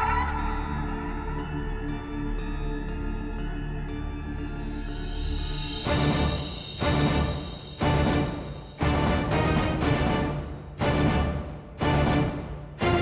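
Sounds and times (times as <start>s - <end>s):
low drone: 0.0s - 13.0s
heavy percussive hits: 5.8s - 13.0s.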